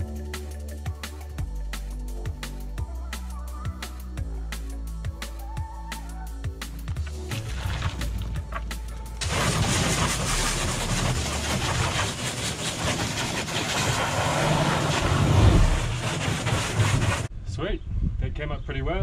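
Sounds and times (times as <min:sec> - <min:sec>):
background music: 0:00.0 - 0:11.4
hose water spraying on plastic: 0:07.0 - 0:17.3.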